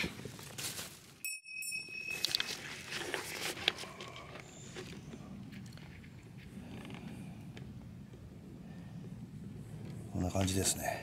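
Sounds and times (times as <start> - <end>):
bright bell-like chime: 1.2 - 2.7.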